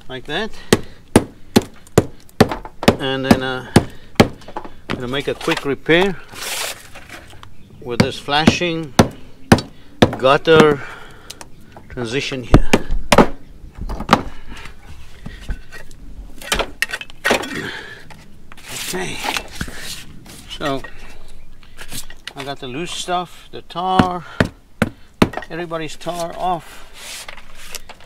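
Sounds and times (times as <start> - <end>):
scraper knocking and chipping tar: 0.6 - 5.2, 23.9 - 26.4.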